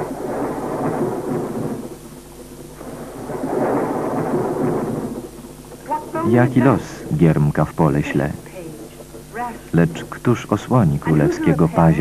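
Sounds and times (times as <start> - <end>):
rolling thunder: 0.0 - 8.4.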